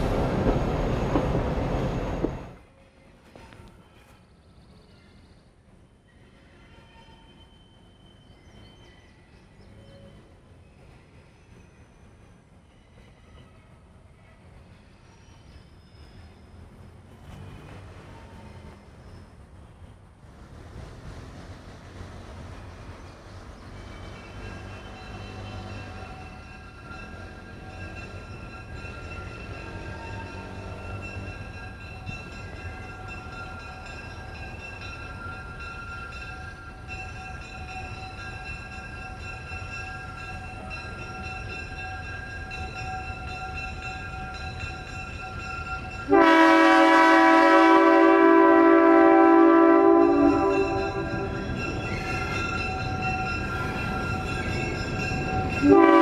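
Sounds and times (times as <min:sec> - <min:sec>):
locomotive engine rumble: 0:00.0 - 0:02.6
locomotive air horn chord: 0:46.1 - 0:51.4, 0:55.6 - 0:56.0.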